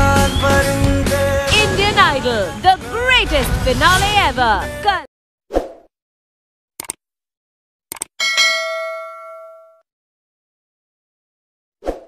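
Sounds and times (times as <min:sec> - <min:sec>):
quick clicks: 0:06.8 - 0:07.0, 0:07.9 - 0:08.1
bright bell ding: 0:08.2 - 0:09.8.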